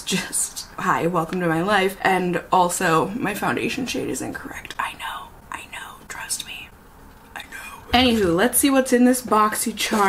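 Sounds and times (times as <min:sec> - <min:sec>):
woman speaking: 0:00.0 - 0:06.7, 0:07.4 - 0:10.0
woman whispering softly: 0:04.6 - 0:07.9.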